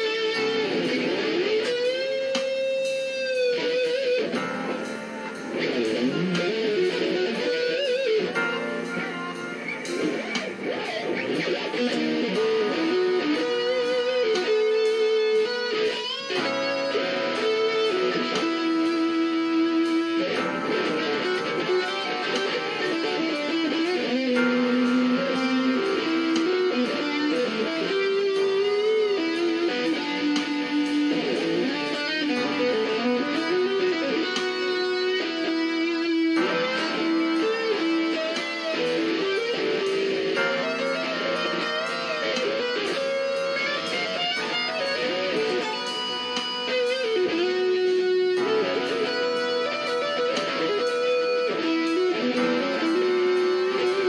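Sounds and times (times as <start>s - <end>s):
electric guitar solo: 0.0s - 54.0s
held guitar chords: 0.0s - 54.0s.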